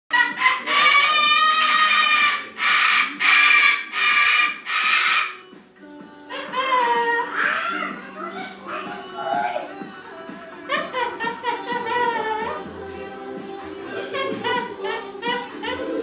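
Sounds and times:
cockatoo screeching: 0:00.1 - 0:05.4, 0:06.3 - 0:09.7, 0:13.9 - 0:16.0.

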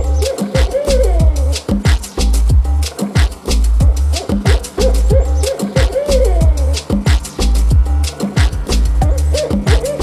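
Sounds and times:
hi-hats: 0:00.0 - 0:10.0
sub bass: 0:00.0 - 0:10.0.

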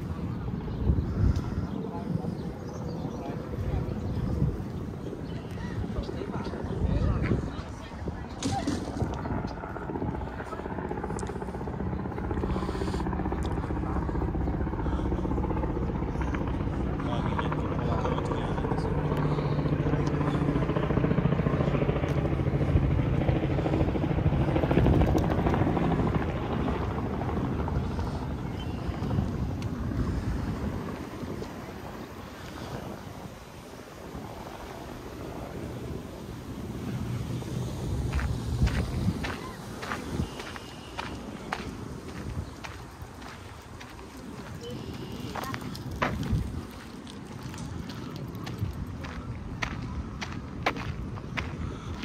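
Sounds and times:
low-flying aircraft engine drone: 0:00.0 - 0:52.0.

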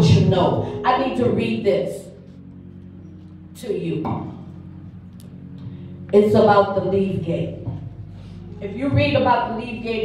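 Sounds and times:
soft keyboard chord: 0:00.0 - 0:10.0.

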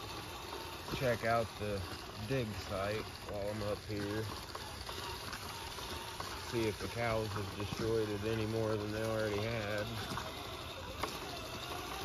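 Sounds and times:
electric motor and gears whining: 0:00.0 - 0:12.0
tyres on dirt: 0:00.0 - 0:12.0.

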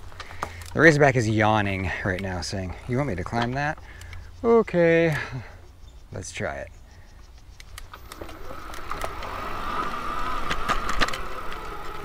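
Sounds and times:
electric motor whining: 0:08.0 - 0:12.0.

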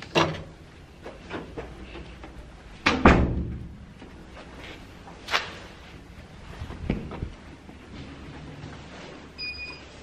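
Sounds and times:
door shutting with heavy thud: 0:02.8 - 0:03.7.

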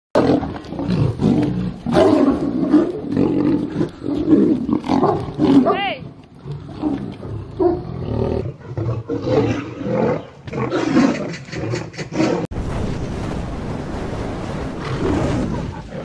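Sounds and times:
big cats snarling and roaring: 0:00.2 - 0:12.5, 0:14.5 - 0:16.0.

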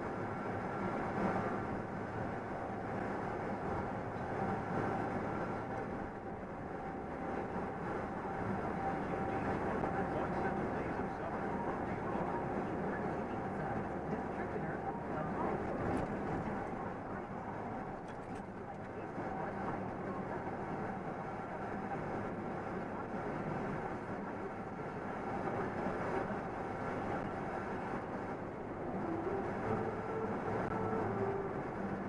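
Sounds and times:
road noise: 0:00.0 - 0:32.0
truck engine drone: 0:00.0 - 0:32.0.

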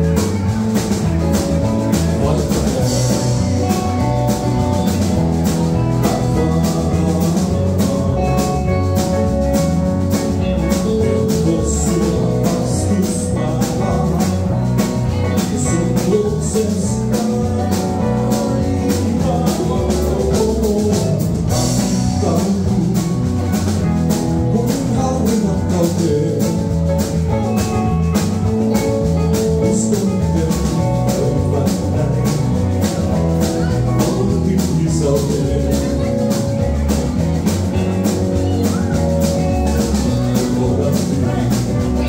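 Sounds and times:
rock band playing: 0:00.0 - 0:42.0.

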